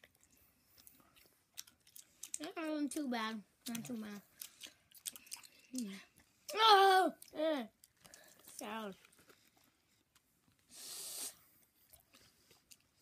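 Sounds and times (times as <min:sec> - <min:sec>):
boy making wordless vocal sounds: 0:05.8 - 0:07.8
hiss-like burst of noise: 0:10.7 - 0:11.4.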